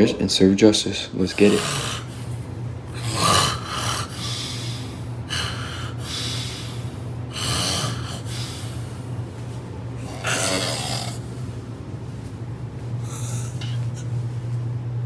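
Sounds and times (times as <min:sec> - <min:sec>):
steady low hum: 0:00.0 - 0:15.0
man snoring: 0:01.3 - 0:02.2, 0:02.9 - 0:08.5, 0:10.0 - 0:11.3.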